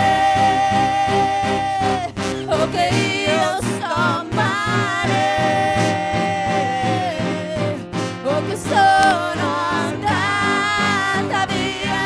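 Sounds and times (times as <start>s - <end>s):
live band playing: 1.1s - 12.0s
woman singing a held note: 4.0s - 9.4s.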